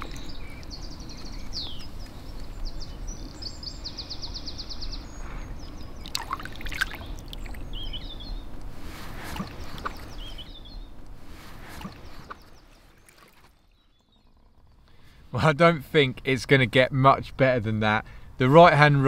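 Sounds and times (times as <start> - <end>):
water splashing and sloshing: 0.0 - 4.0, 5.0 - 15.3
small birds chirping: 0.0 - 19.0.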